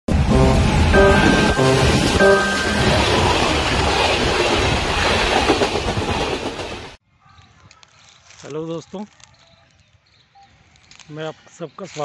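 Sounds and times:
train wheels rumbling over rails: 2.5s - 7.0s
faint outdoor background: 7.0s - 12.0s.

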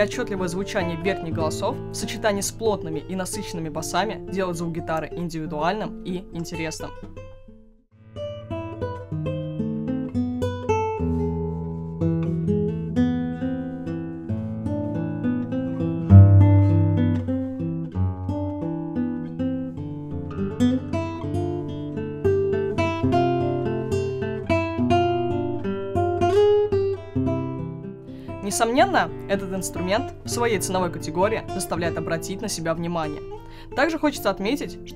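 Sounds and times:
fingerpicked classical guitar: 0.0s - 34.9s.

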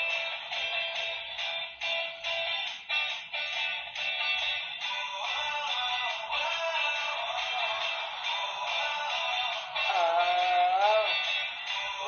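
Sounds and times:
backing track: 0.0s - 12.0s
man singing into a microphone: 5.1s - 11.2s.

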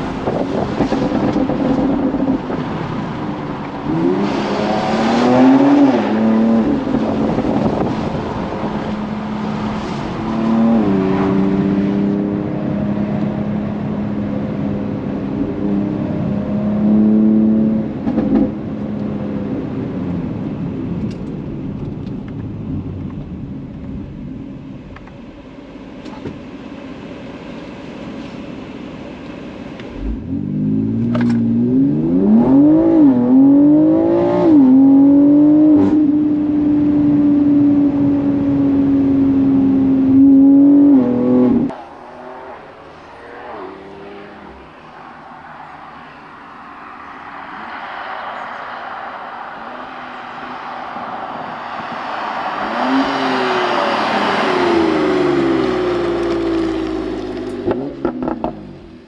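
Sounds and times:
car engine accelerating hard: 29.7s - 59.0s
car passing by: 41.7s - 58.5s.

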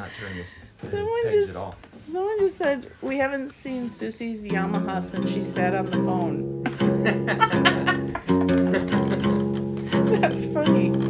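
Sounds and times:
out of tune acoustic guitar strums: 4.4s - 11.0s.

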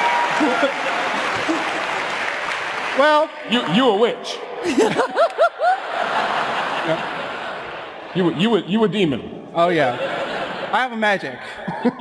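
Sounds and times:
large audience applauding: 0.0s - 3.8s.

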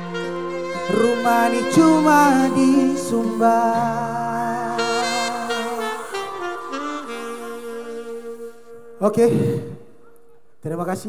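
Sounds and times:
live band music: 0.0s - 9.2s
saxophone-like lead notes: 0.0s - 10.3s.

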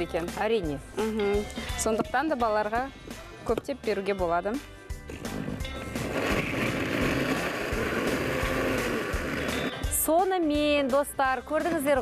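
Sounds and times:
electric blender grinding: 5.1s - 9.8s.

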